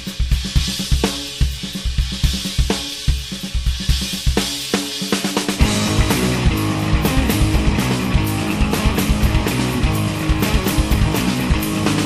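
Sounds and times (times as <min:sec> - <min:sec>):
rock music with drum kit: 0:00.0 - 0:12.0.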